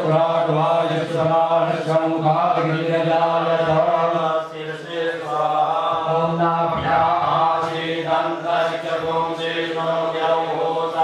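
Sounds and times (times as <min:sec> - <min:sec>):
person chanting mantras: 0:00.0 - 0:11.0.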